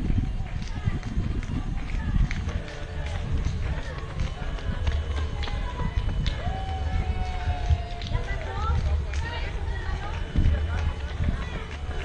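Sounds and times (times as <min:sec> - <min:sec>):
constant low rumble: 0:00.0 - 0:12.0
indistinct voices of spectators: 0:00.0 - 0:12.0.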